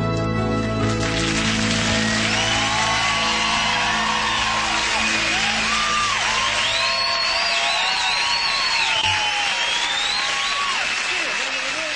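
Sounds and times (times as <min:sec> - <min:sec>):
audience applauding and cheering: 0:00.4 - 0:11.9
whoops and whistles: 0:05.0 - 0:10.8.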